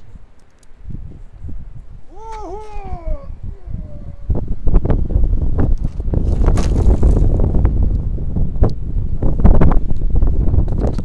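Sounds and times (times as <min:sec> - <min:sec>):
wind rumble on microphone: 0:00.0 - 0:11.0
person yelling: 0:02.1 - 0:04.3.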